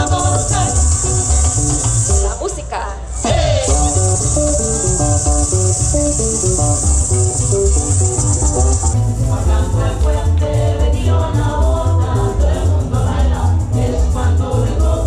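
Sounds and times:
maracas shaking: 0:00.0 - 0:02.7, 0:03.6 - 0:15.0
pulsing bass: 0:00.0 - 0:02.7, 0:03.3 - 0:15.0
plucked string band music: 0:03.6 - 0:09.0.

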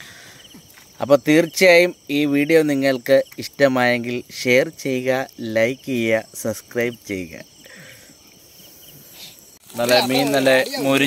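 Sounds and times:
crickets chirping: 0:00.0 - 0:11.0
man talking: 0:01.0 - 0:07.5, 0:09.7 - 0:11.0.

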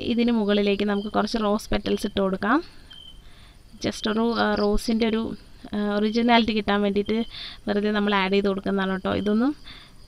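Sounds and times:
person talking: 0:03.8 - 0:09.6.

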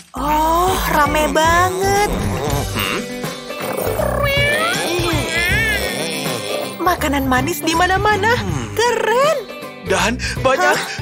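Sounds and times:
background music: 0:00.0 - 0:11.0
cats meowing: 0:00.4 - 0:06.8.

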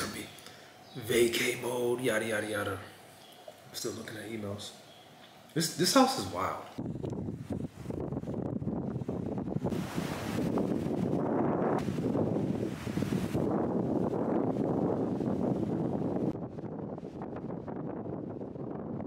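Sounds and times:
wind buffeting microphone: 0:06.7 - 0:19.0
surf breaking on beach: 0:09.6 - 0:16.3.

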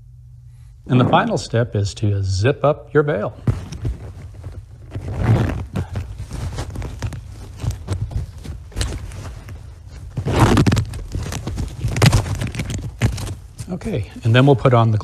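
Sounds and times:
fabric rustling: 0:03.4 - 0:15.0
zipper rasping: 0:04.6 - 0:13.4
zipper clicks and scrapes: 0:04.8 - 0:13.4.

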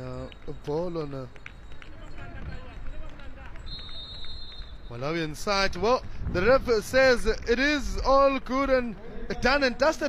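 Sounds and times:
referee's whistle long blast: 0:03.7 - 0:05.0.

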